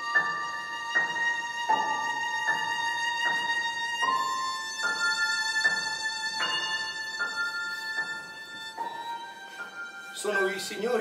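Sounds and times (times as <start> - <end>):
violin playing slow melody: 0.0 - 11.0.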